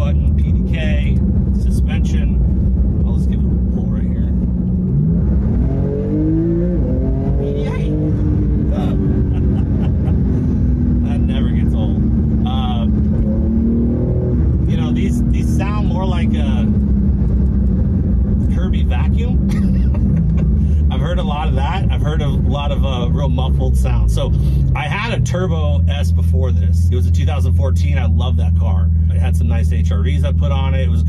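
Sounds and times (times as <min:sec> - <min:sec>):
car engine accelerating: 0:00.0 - 0:31.0.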